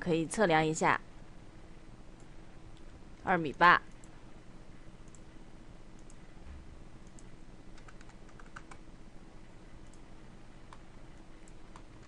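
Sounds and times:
low background hum: 0.0 - 12.0
computer mouse clicks: 5.0 - 5.2, 6.0 - 6.2, 7.0 - 8.8, 9.8 - 10.0
keyboard keystrokes: 7.0 - 8.8.

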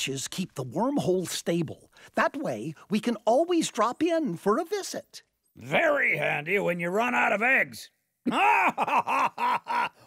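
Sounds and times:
man laughing: 8.2 - 10.0.

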